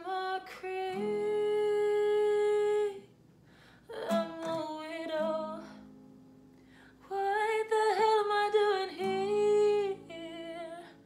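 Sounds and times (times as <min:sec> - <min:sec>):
woman singing: 0:00.0 - 0:03.1, 0:03.8 - 0:05.9, 0:07.0 - 0:11.0
acoustic guitar: 0:00.0 - 0:11.0.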